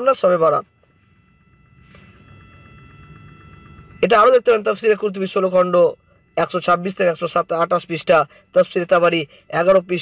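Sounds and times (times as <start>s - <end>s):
electrical whine: 0.0s - 10.0s
low hum: 0.0s - 10.0s.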